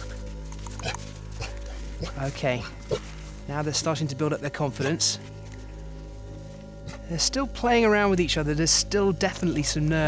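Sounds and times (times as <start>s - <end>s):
background music drone: 0.0s - 10.0s.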